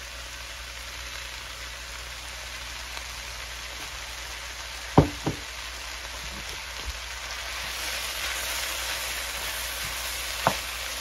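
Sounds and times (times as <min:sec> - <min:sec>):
vegetables sizzling in a skillet: 0:00.0 - 0:11.0.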